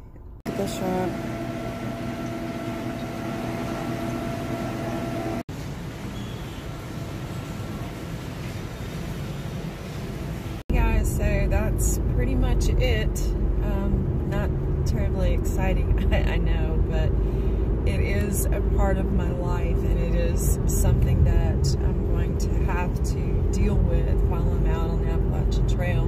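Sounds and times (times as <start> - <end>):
shop hum: 0.1 - 26.0
woman talking: 0.5 - 1.2, 10.7 - 17.1, 17.9 - 26.0
car cabin road rumble: 10.0 - 26.0.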